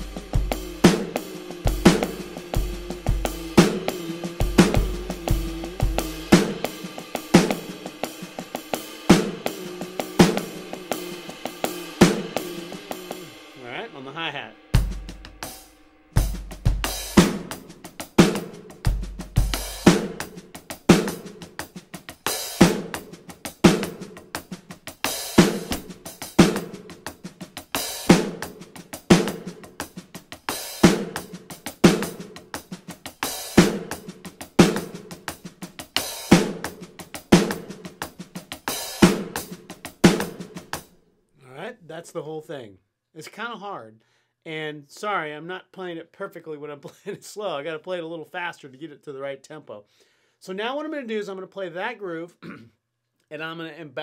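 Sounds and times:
electronic drum kit funk groove: 0:00.0 - 0:40.9.

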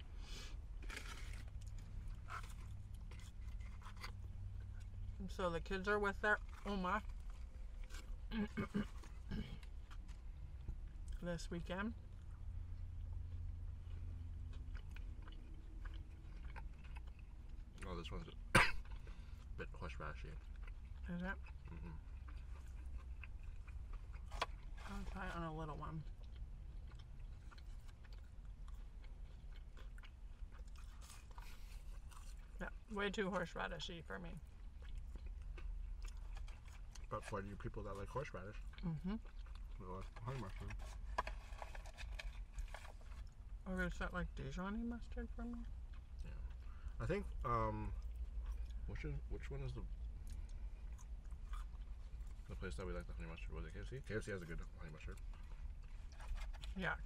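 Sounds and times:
person chewing crunchy food: 0:00.0 - 0:05.2, 0:06.1 - 0:11.3, 0:12.0 - 0:32.9, 0:34.4 - 0:43.6, 0:45.6 - 0:49.0, 0:49.8 - 0:53.3
low hum inside car: 0:00.0 - 0:57.0.

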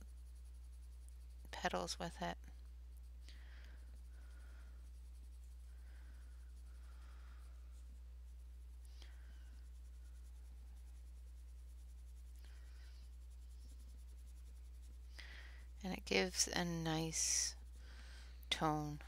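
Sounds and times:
low electrical hum: 0:00.0 - 0:19.0
pencil rubbing on paper: 0:03.8 - 0:16.6.

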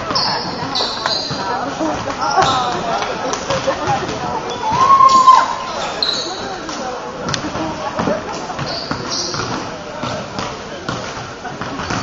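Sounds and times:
sneakers squeaking on hardwood: 0:00.0 - 0:06.6, 0:08.5 - 0:11.0
voices talking: 0:00.0 - 0:11.6
basketball bouncing: 0:08.6 - 0:12.0.

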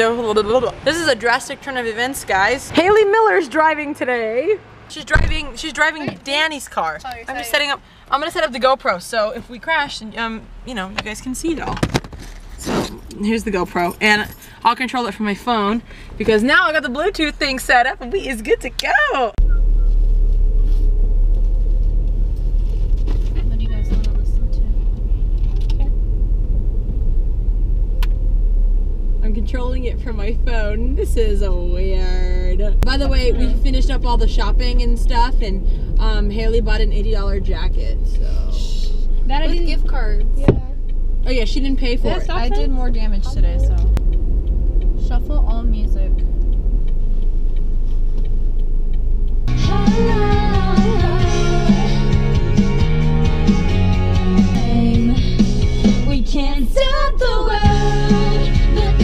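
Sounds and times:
car engine and road noise: 0:00.0 - 0:59.0
pop song with singing: 0:49.5 - 0:59.0.

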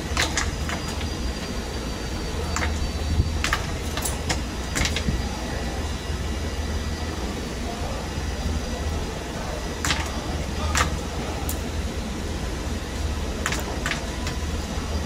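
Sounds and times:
low machinery hum: 0:00.0 - 0:15.0.

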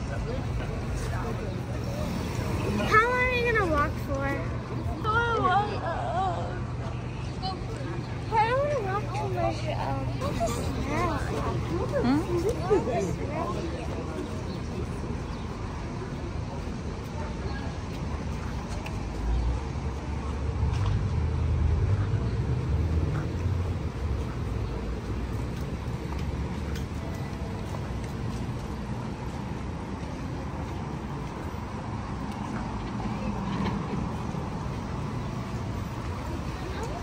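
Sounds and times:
city street ambience: 0:00.0 - 0:37.0.

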